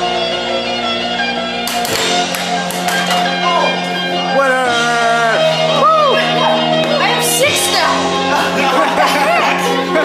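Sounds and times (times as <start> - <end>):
music playing: 0.0 - 10.0
air hockey puck clacks: 1.7 - 3.3.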